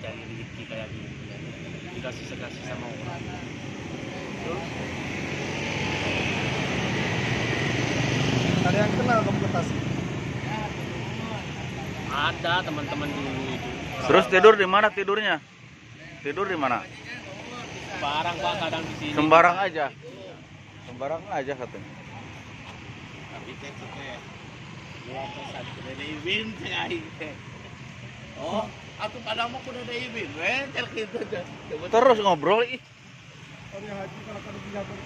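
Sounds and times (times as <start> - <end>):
outdoor background hiss: 0.0 - 35.0.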